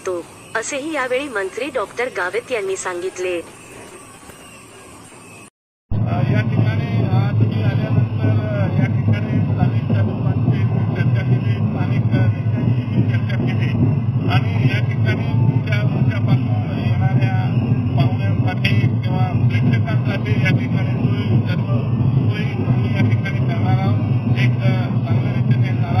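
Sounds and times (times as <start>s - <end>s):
low background din: 0.0s - 26.0s
man speaking: 6.0s - 26.0s.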